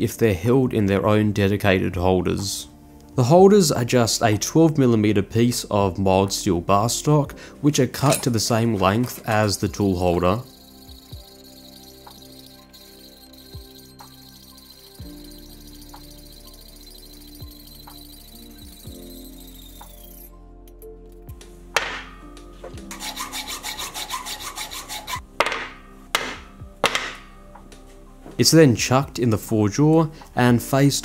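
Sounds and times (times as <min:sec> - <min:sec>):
hacksaw cutting steel bar: 0:09.8 - 0:20.3, 0:21.8 - 0:22.2, 0:22.9 - 0:27.3.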